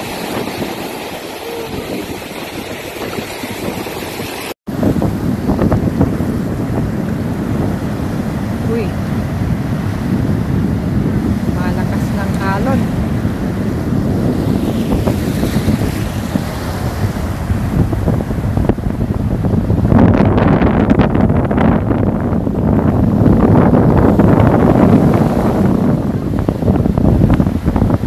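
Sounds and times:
ocean surf breaking: 0.0 - 28.0
wind noise on microphone: 0.0 - 28.0.

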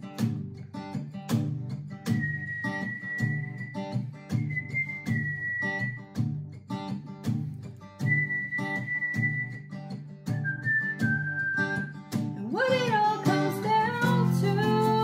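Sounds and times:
acoustic guitar strumming: 0.0 - 15.0
woman whistling a melody: 2.1 - 6.2, 8.0 - 9.7, 10.3 - 12.0.

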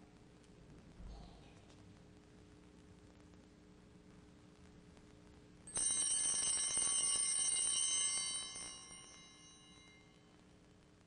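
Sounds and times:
altar bells jingling: 5.7 - 10.2.

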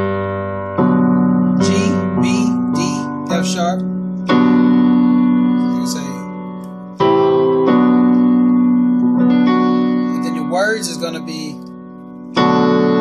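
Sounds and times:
digital piano chords: 0.0 - 13.0.

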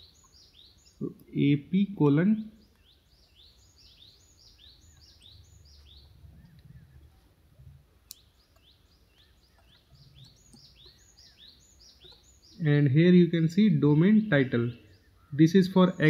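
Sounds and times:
faint bird chirping: 0.0 - 16.0.

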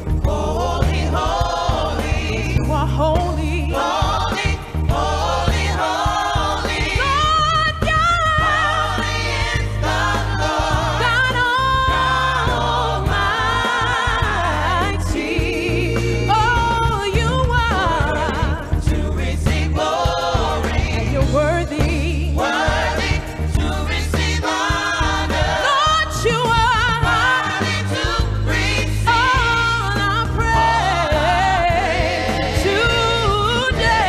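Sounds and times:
gospel band with deep bass: 0.0 - 34.0.

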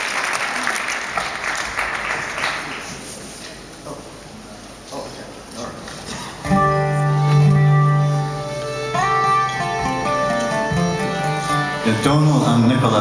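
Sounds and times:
acoustic string instruments: 6.1 - 13.0.

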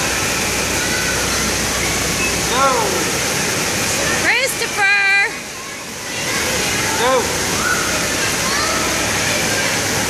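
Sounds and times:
rushing water: 0.0 - 10.0.

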